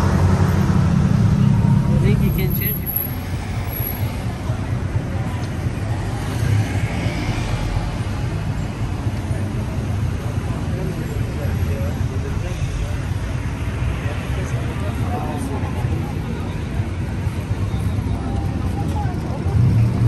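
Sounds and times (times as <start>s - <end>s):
people's voices: 0.0s - 20.0s
road traffic rumble: 0.0s - 20.0s.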